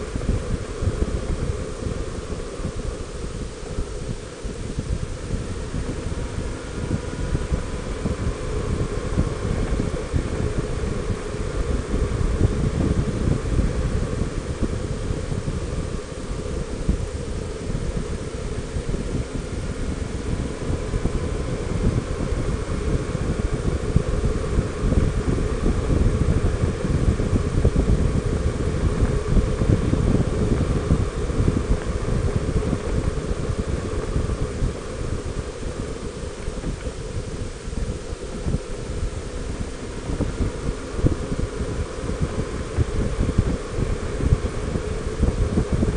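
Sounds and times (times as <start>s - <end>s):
faint steady whine: 0.0s - 45.9s
wind buffeting microphone: 0.0s - 45.9s.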